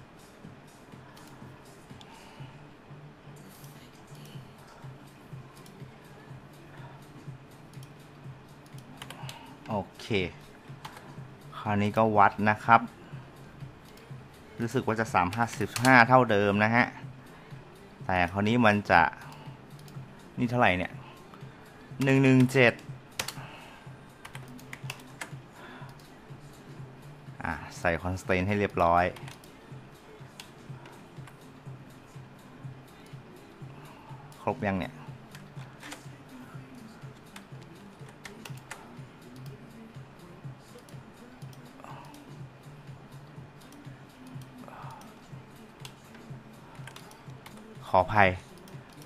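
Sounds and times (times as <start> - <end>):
keyboard and mouse clicks: 8.6 - 9.8, 10.8 - 11.1, 15.2 - 16.1, 22.0 - 23.4, 24.2 - 26.1, 29.1 - 29.5, 35.3 - 36.1, 37.4 - 39.6, 45.8 - 47.8
computer input clicking: 23.2 - 23.4, 46.8 - 47.7.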